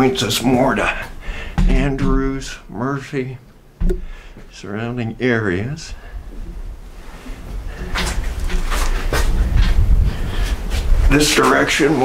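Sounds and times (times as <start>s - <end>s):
wind rumble on microphone: 6.0s - 11.4s.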